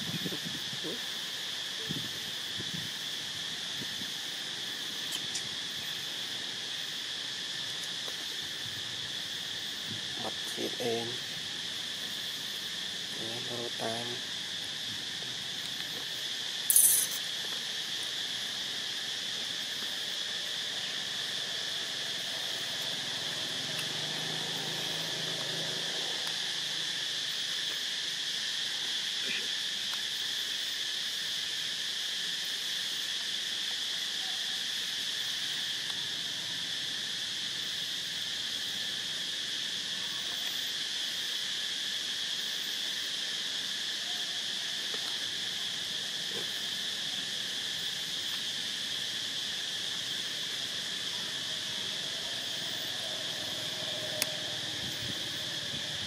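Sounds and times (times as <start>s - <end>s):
high-pitched hiss: 0.0s - 56.0s
insects chorus: 0.0s - 56.0s.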